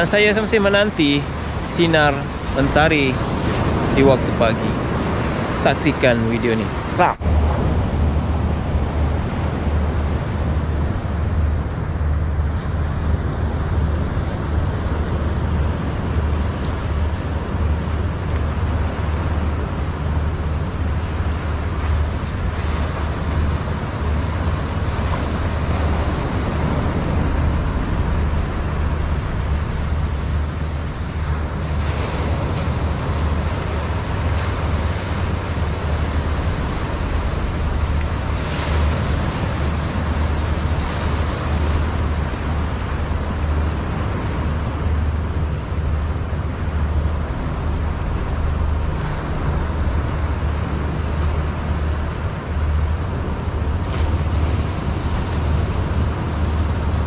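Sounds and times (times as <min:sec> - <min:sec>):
surf washing onto beach: 0:00.0 - 0:57.0
wind rumble on microphone: 0:00.0 - 0:57.0.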